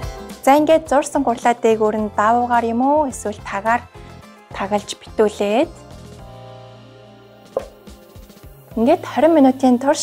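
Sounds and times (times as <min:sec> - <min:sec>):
light taps of wooden lid: 0:07.6 - 0:07.8
wooden lid knocking on bowl: 0:07.6 - 0:07.8.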